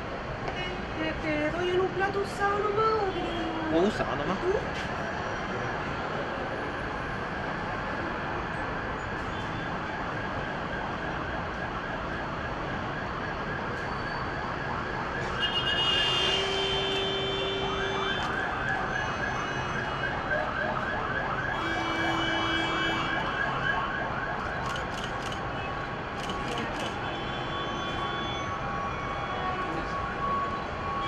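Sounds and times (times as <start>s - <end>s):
steady siren tones: 3.7s - 31.0s
fire engine siren yelping: 6.9s - 26.9s, 27.7s - 31.0s.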